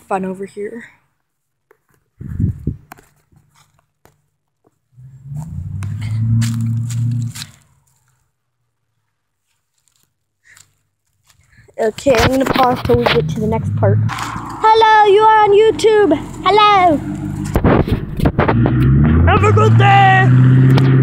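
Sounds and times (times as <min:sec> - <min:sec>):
low rumble: 0:12.9 - 0:19.8.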